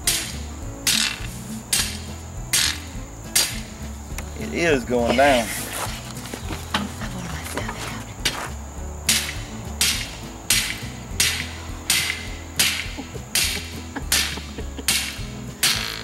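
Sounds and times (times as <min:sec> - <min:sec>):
hammer striking metal stake: 0:00.0 - 0:04.3, 0:09.1 - 0:16.0.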